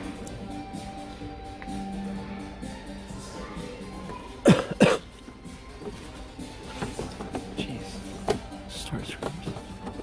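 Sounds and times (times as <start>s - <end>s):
faint background music: 0.0s - 10.0s
person coughing: 4.4s - 5.2s.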